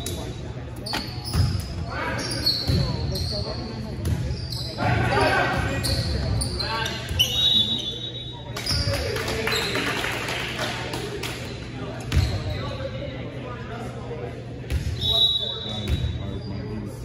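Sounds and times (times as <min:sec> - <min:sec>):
sneakers squeaking on court: 0:00.8 - 0:04.9, 0:05.6 - 0:08.9, 0:12.0 - 0:12.7.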